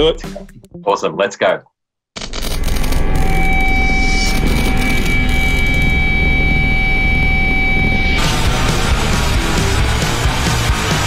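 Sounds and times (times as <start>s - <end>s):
music: 0.0s - 1.3s, 7.7s - 11.0s
steady high tone: 2.5s - 10.0s
loud vehicle engine: 8.2s - 11.0s.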